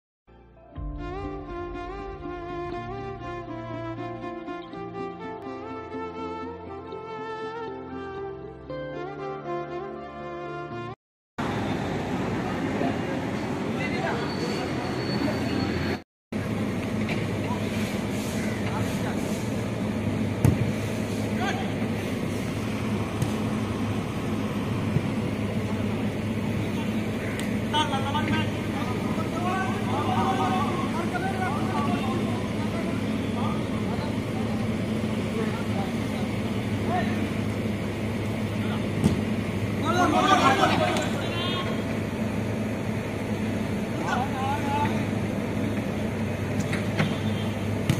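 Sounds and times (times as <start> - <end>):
ball being kicked: 20.4 - 20.7, 23.2 - 23.5, 39.0 - 39.3
players shouting: 26.8 - 33.1, 39.7 - 41.9.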